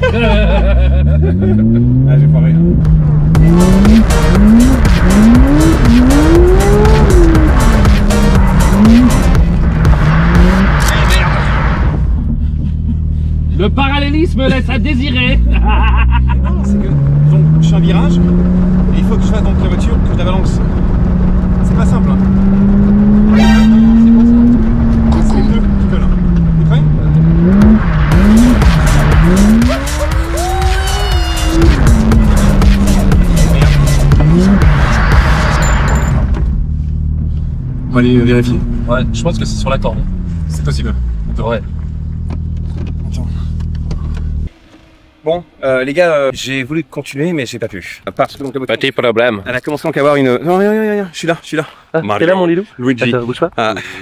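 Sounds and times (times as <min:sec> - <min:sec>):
car engine revving: 0:00.0 - 0:47.6
tyre squeal: 0:23.3 - 0:24.3.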